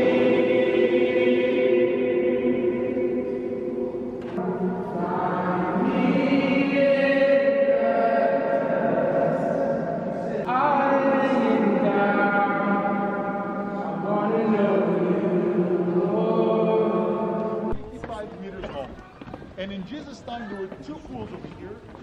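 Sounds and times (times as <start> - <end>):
choir singing a cappella: 0.0 - 17.8.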